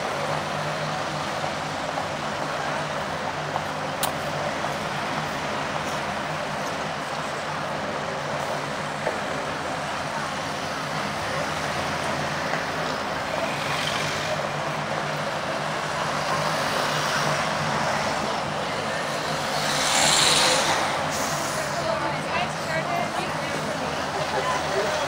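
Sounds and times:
passersby talking: 0.0s - 25.0s
road traffic: 0.0s - 25.0s.

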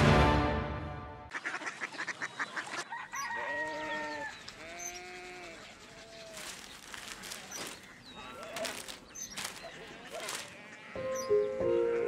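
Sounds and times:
rooster crowing: 2.9s - 4.4s.

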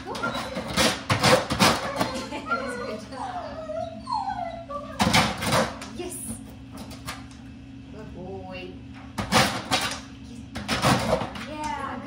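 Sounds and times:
dog whining: 0.0s - 5.6s.

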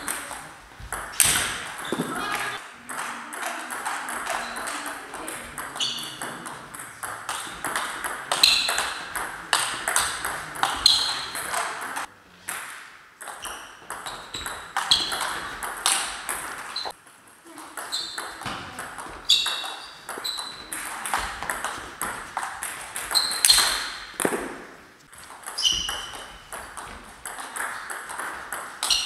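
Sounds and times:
table tennis ball clicking: 0.0s - 17.0s.

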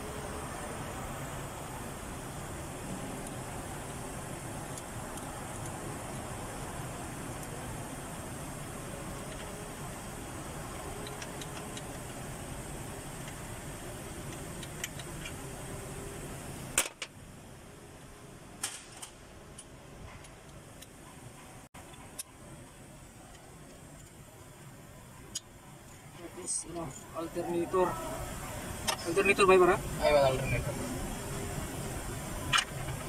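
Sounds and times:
workshop background noise: 0.0s - 33.0s.

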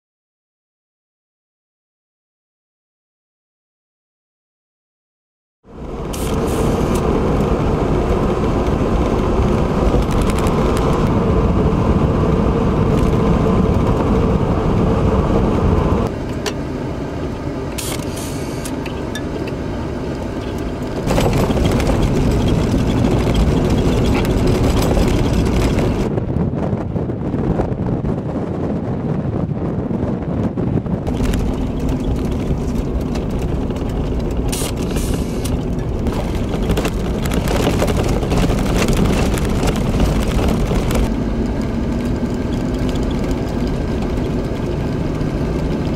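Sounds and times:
car interior driving rumble: 5.7s - 45.9s.

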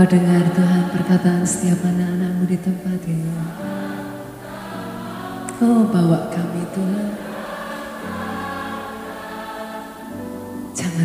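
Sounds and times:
group singing worship song: 0.0s - 11.0s.

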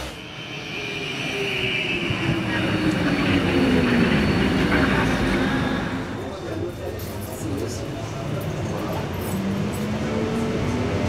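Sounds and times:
electric tram motor whine: 0.0s - 6.1s
tram rolling noise: 0.0s - 11.0s.

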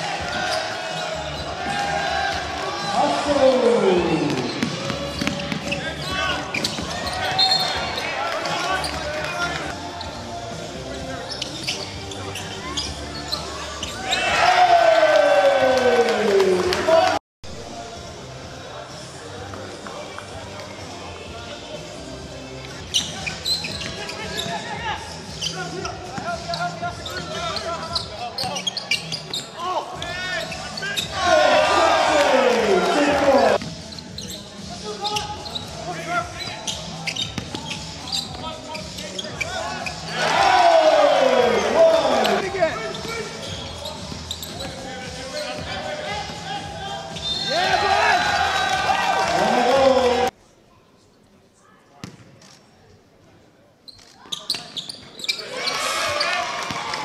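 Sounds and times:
crowd cheering: 14.1s - 17.2s, 31.1s - 33.6s, 40.1s - 42.5s, 47.4s - 50.3s, 55.5s - 57.0s
voices: 18.9s - 33.6s, 34.2s - 50.3s.

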